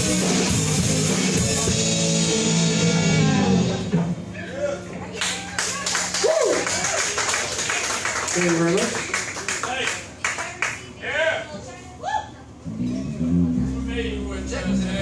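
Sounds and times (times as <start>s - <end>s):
whooping cheers: 5.2s - 7.5s
audience clapping: 5.2s - 10.8s
band chord ringing out: 12.7s - 15.0s.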